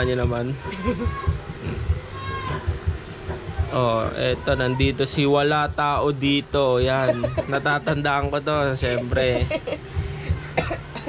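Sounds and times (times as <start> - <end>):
person coughing: 10.6 - 11.0.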